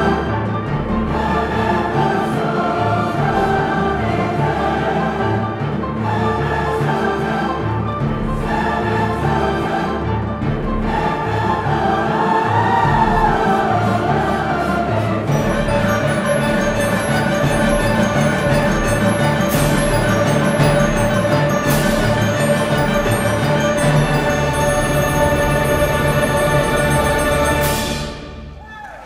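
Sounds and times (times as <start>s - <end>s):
orchestra and choir performing: 0.0s - 29.0s.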